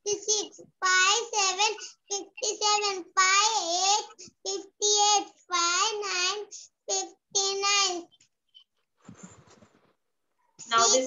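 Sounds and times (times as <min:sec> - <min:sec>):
child chanting over video call: 0:00.1 - 0:08.1.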